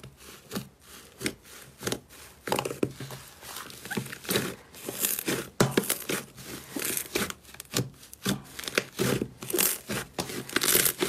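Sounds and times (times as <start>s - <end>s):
slime squishing and crackling: 0.3s - 11.0s.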